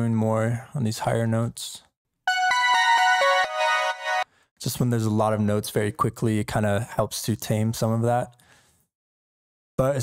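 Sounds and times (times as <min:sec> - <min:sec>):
synthesized chime melody: 0:02.3 - 0:04.2.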